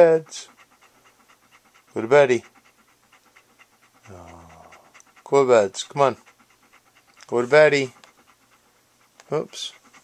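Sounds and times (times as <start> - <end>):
dog panting: 0.0 - 10.0.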